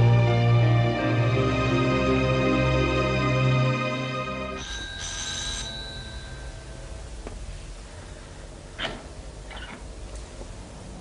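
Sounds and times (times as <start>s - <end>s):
electric doorbell ringing: 4.6s - 6.9s.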